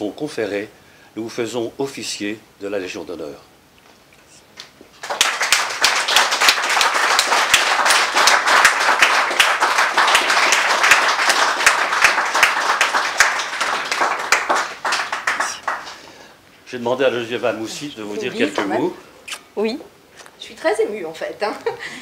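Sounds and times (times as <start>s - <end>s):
audience applauding: 5.0s - 16.3s.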